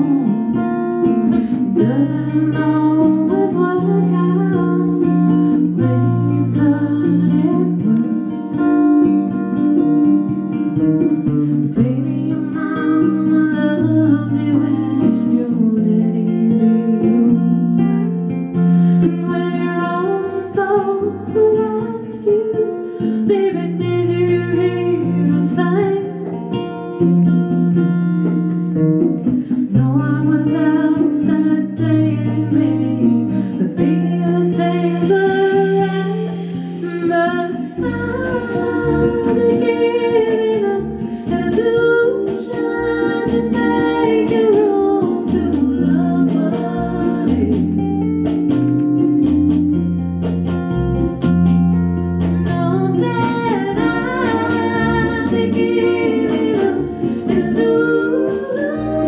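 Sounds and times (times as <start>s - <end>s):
woman singing: 0.0s - 27.6s, 29.2s - 49.3s, 52.2s - 59.0s
acoustic guitar: 0.0s - 59.0s.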